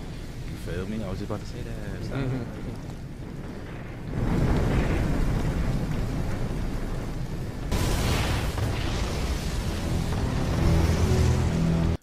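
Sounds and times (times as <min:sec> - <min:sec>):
large fire rumbling and hissing: 0:00.0 - 0:12.0.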